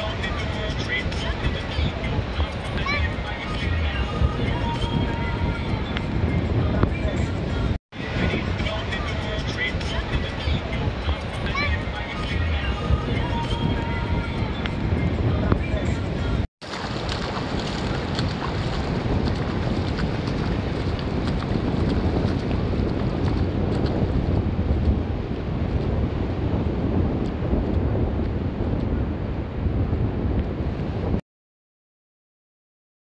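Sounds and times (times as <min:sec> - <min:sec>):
wind buffeting microphone: 0:00.0 - 0:31.2
surf breaking on beach: 0:16.6 - 0:27.5.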